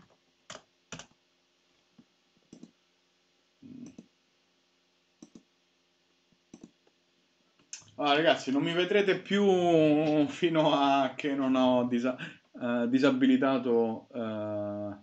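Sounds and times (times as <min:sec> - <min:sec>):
keyboard and mouse clicks: 0:00.0 - 0:01.1, 0:02.5 - 0:02.8, 0:03.7 - 0:04.1, 0:05.2 - 0:05.5, 0:06.5 - 0:06.9.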